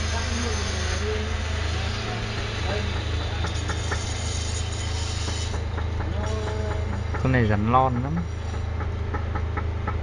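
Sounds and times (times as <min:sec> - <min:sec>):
constant background rush: 0:00.0 - 0:10.0
steady low hum: 0:00.0 - 0:10.0.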